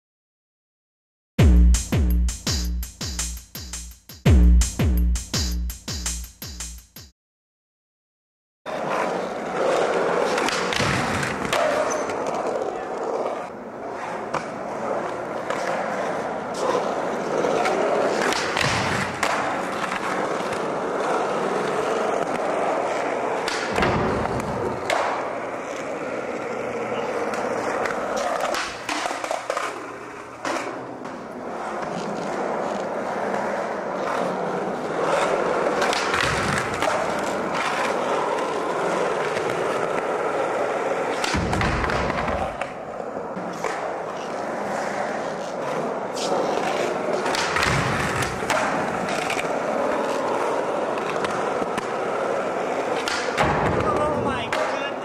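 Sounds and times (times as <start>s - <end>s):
skateboard wheels rolling on concrete: 8.7s - 55.0s
skateboard clacks and thuds: 8.8s - 13.1s, 17.4s - 26.0s, 27.0s - 55.0s.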